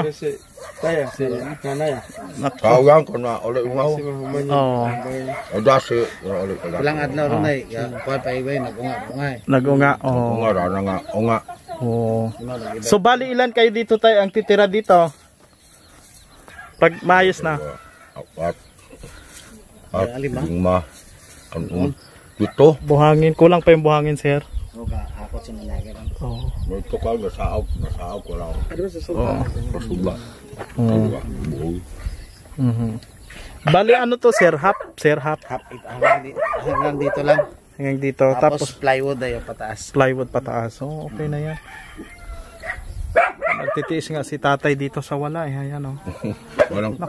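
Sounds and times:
man talking: 0:00.0 - 0:15.2, 0:16.8 - 0:19.1, 0:19.9 - 0:32.0, 0:33.6 - 0:41.6, 0:43.5 - 0:47.0.

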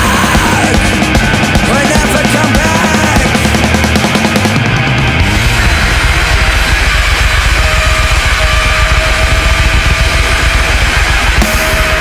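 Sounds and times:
loud distorted band playing: 0:00.0 - 0:12.0
steady high held note: 0:05.0 - 0:12.0.

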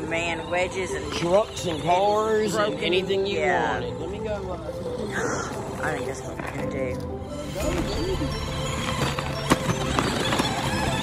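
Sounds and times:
toy truck motor hum: 0:00.0 - 0:03.5, 0:07.3 - 0:11.0.

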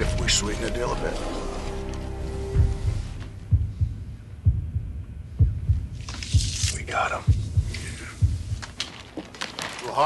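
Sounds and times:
held low note: 0:00.0 - 0:04.8
deep heartbeat-like double thumps: 0:02.2 - 0:08.8.

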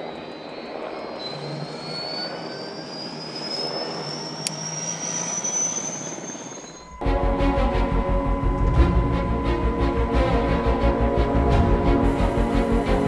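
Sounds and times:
helicopter engines whining: 0:00.0 - 0:13.0.

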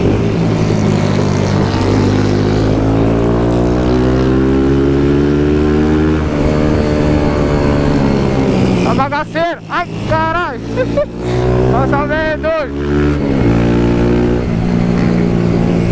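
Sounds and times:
motorcycle engine accelerating: 0:00.0 - 0:15.9.

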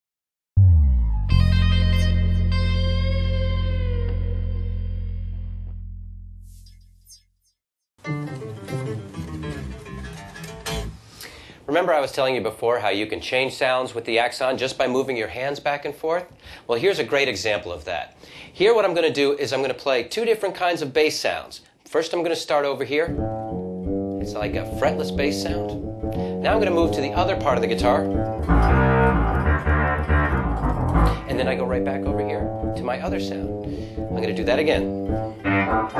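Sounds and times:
electric guitar plucked notes: 0:00.6 - 0:06.0, 0:08.0 - 0:11.0, 0:23.1 - 0:35.9.

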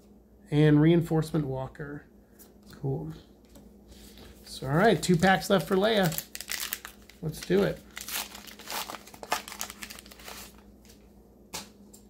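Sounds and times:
foil wrapper crinkling: 0:04.6 - 0:11.0.

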